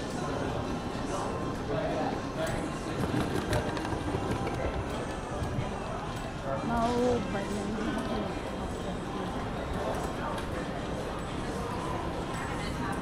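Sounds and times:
suitcase wheels rolling: 2.8s - 5.6s.

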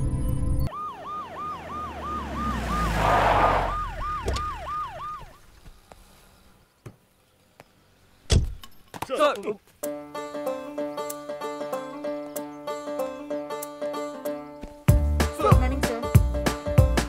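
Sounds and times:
police siren wailing: 0.7s - 5.4s.

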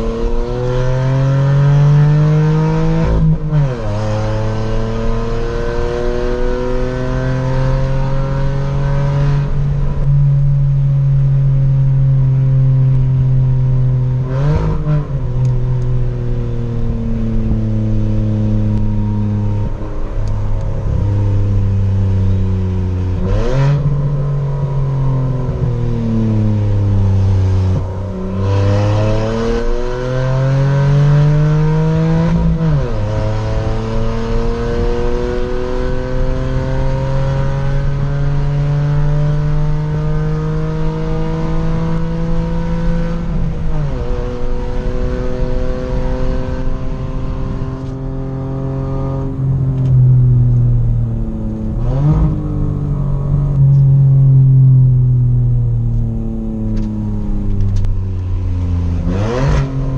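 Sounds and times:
car engine from inside cabin: 0.0s - 59.9s.

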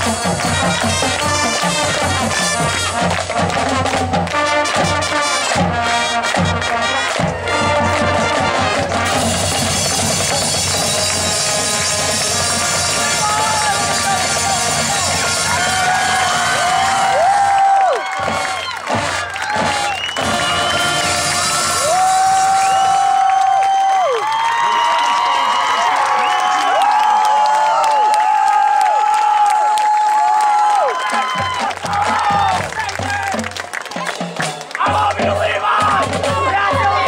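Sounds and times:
marching band playing: 0.0s - 23.4s, 30.8s - 37.0s
crowd cheering and whooping: 12.9s - 34.1s.

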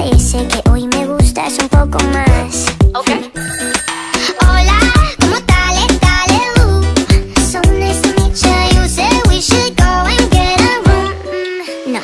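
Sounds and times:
sped-up pop song: 0.0s - 12.0s.

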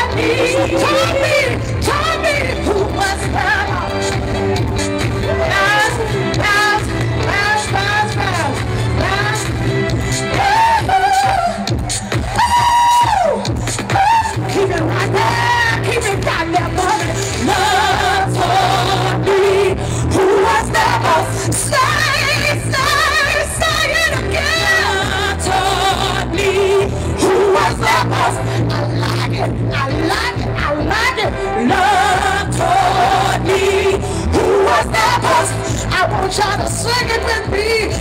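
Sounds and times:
amplified backing music: 0.0s - 38.0s
steady bass line: 0.0s - 38.0s
woman singing with vibrato: 0.0s - 38.0s.

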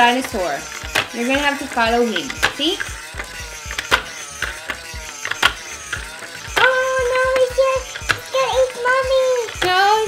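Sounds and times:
toy dinosaur mechanical clicks: 0.0s - 10.0s.

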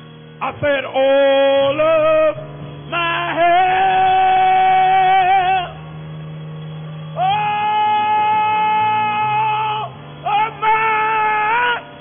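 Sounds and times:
organ chord: 0.0s - 12.0s
man singing long held notes: 0.4s - 5.8s, 7.2s - 12.0s.

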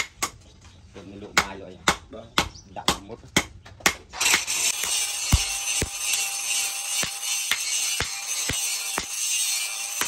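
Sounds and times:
hammer striking metal on anvil: 4.3s - 10.0s.

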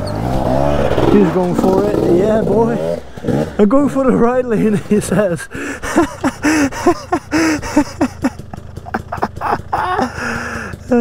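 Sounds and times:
dirt bike engine idling: 0.0s - 11.0s
people laughing: 4.5s - 11.0s.

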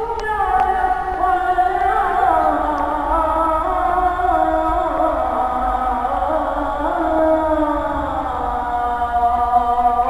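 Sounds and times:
man chanting call to prayer: 0.0s - 10.0s.

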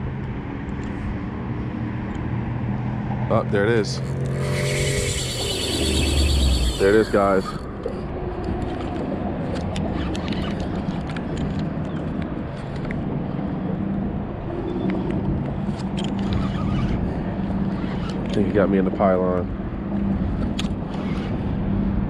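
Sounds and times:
electric trolling motor hum: 4.0s - 7.7s, 16.0s - 18.4s.

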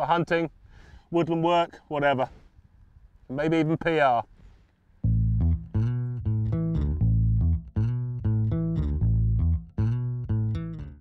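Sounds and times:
instrumental music with bass: 5.0s - 11.0s.

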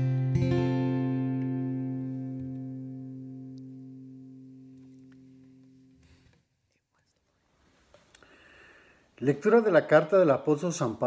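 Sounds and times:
guitar chord ringing: 0.0s - 6.0s.

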